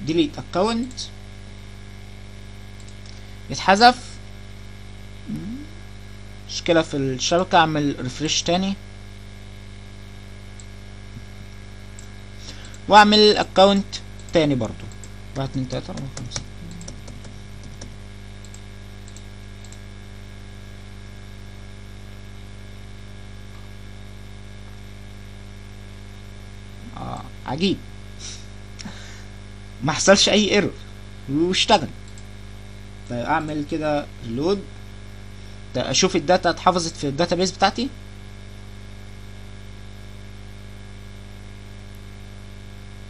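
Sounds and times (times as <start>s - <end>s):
low electrical hum: 0.0s - 43.0s.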